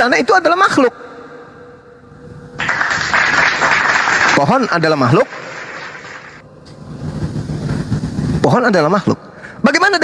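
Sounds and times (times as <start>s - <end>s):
faint steady hum: 0.0s - 10.0s
loud burst of hissing noise: 5.2s - 8.7s.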